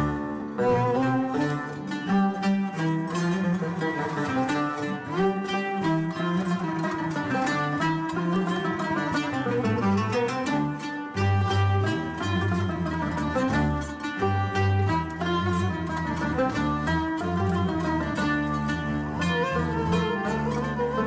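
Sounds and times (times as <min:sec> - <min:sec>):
plucked strings: 0:00.0 - 0:21.0.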